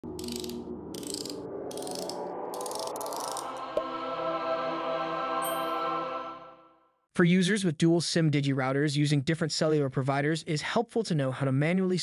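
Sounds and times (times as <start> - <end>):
rising tone: 0.0 - 6.8
sustained chords: 0.0 - 6.8.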